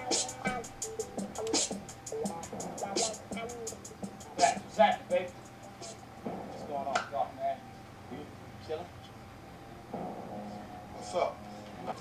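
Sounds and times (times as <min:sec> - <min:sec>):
faint steady hum: 0:00.0 - 0:12.0
movie dialogue: 0:02.3 - 0:12.0.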